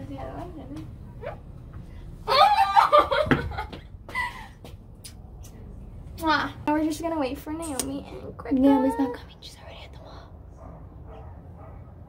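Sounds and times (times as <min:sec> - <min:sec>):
faint whispering: 0:08.6 - 0:10.6.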